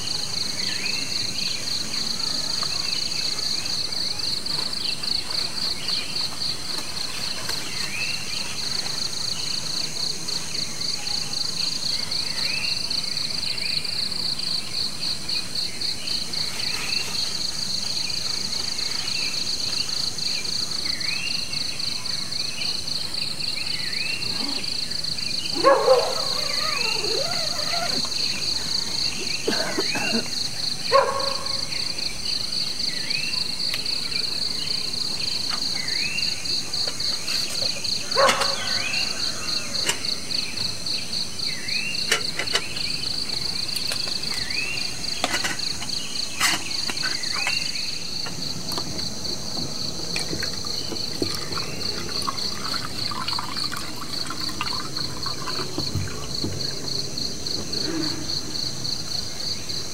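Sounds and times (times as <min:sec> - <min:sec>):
insects trilling: 0:00.0 - 0:59.9.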